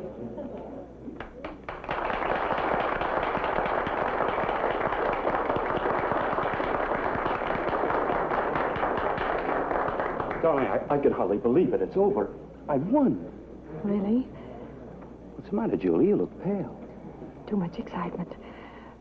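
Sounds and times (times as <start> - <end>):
audience applauding: 1.2 - 11.2.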